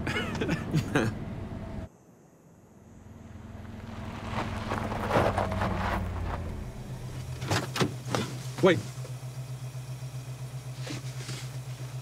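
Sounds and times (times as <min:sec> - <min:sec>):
car engine idling: 0:02.9 - 0:12.0.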